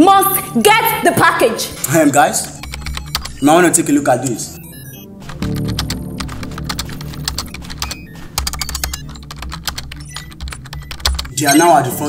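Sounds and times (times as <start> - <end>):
background music with low bass: 1.8 - 12.0
rapid keyboard typing: 1.8 - 12.0.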